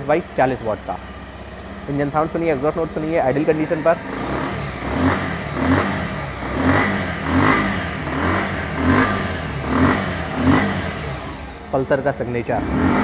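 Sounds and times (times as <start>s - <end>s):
motorcycle engine idling: 0.0s - 13.0s.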